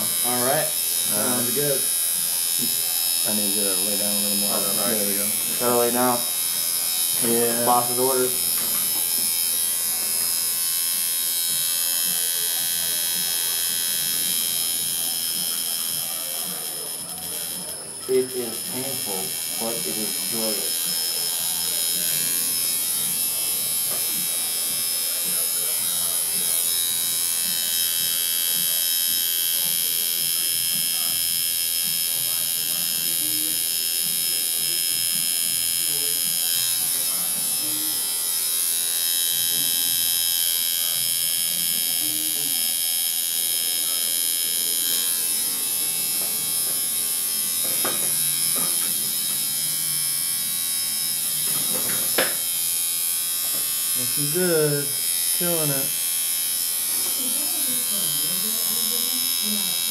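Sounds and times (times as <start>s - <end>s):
tattoo machine buzzing: 0.0s - 59.9s.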